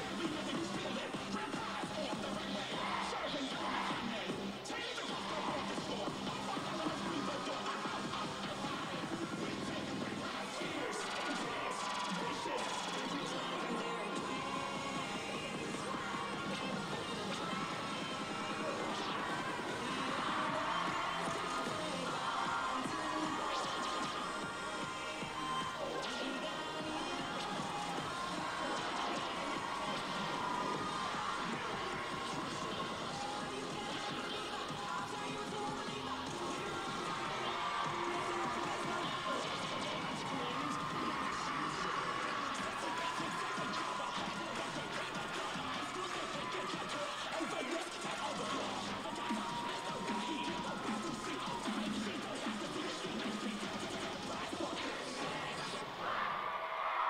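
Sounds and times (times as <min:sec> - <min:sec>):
crowd cheering and screaming: 0:00.0 - 0:57.0
loud cheerleading mix music: 0:00.0 - 0:57.0.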